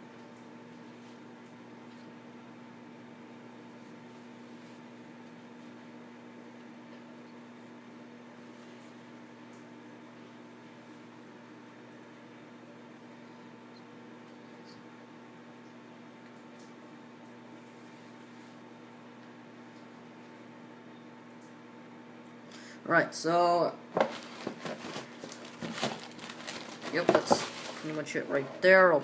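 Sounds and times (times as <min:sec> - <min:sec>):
microwave oven humming: 0:00.0 - 0:29.0.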